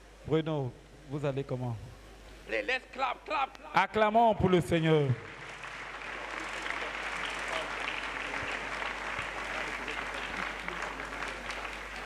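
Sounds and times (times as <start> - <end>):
congregation clapping: 5.0 - 12.0.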